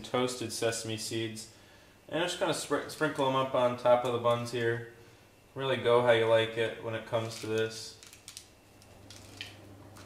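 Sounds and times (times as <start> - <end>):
low steady hum: 0.0 - 10.0
plastic bag rustle: 7.2 - 10.0.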